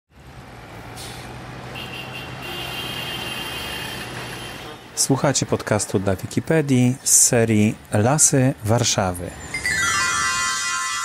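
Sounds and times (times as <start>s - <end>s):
road traffic noise with low hum: 0.1s - 10.2s.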